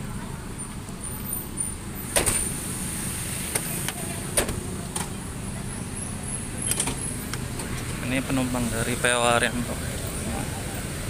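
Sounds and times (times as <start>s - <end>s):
diesel coach engine idling: 0.0s - 11.0s.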